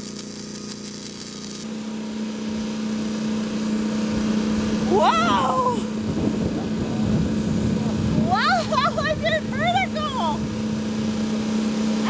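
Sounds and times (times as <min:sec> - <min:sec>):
welding arc crackling and hissing: 0:00.0 - 0:02.1
steady low hum: 0:00.0 - 0:12.0.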